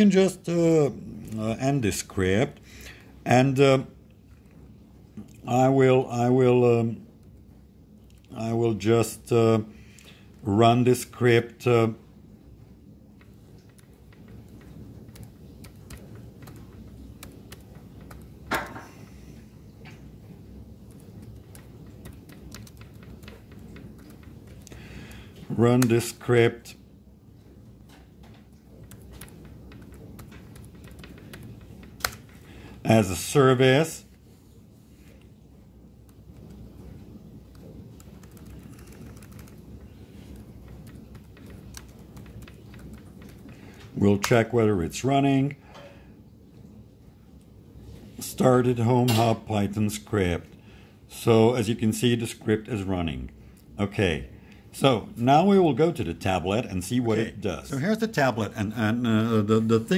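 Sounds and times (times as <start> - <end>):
computer keyboard keys clicking: 13.6 - 18.4, 20.8 - 24.8, 28.8 - 32.4, 37.5 - 43.6.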